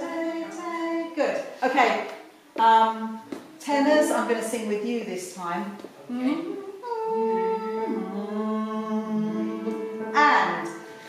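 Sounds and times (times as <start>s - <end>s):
choir humming held notes: 6.2s - 11.0s.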